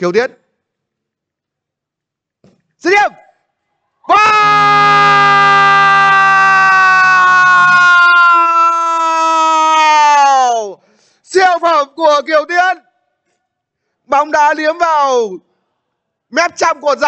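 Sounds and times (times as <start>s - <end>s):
commentator shouting goal: 2.8s - 3.2s.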